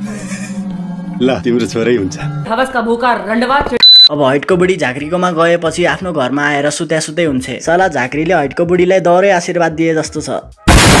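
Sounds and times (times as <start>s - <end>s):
man laughing: 0.0s - 0.6s
background music: 0.0s - 11.0s.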